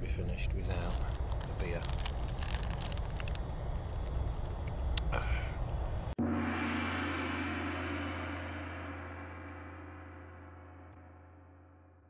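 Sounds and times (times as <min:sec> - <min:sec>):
wind rumbling on microphone: 0:00.5 - 0:06.1
beer can clicks and crackles: 0:00.7 - 0:04.6.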